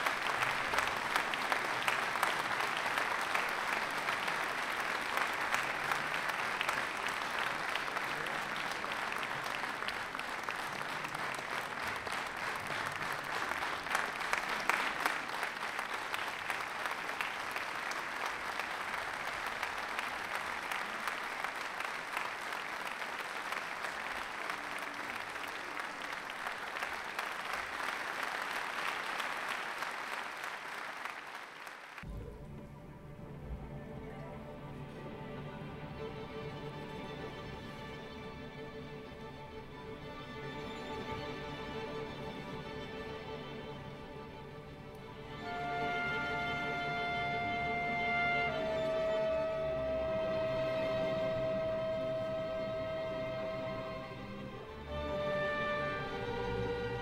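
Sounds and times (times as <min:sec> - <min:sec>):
audience applauding: 0:00.0 - 0:32.1, 0:45.0 - 0:57.0.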